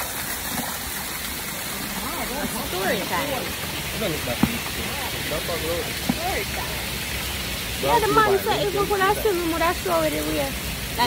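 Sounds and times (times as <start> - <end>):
waterfall splashing on rock: 0.0 - 11.0.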